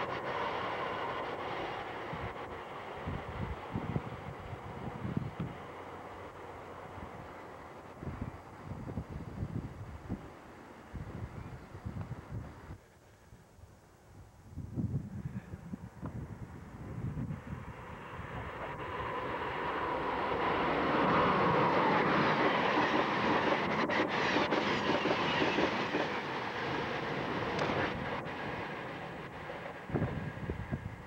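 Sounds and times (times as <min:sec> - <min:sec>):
train wheels rushing on rails: 0:00.0 - 0:12.8, 0:16.0 - 0:31.0.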